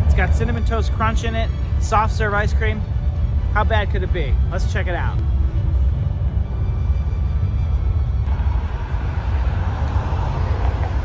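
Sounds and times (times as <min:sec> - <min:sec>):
low traffic rumble: 0:00.0 - 0:11.0
vehicle rushing past: 0:08.2 - 0:11.0.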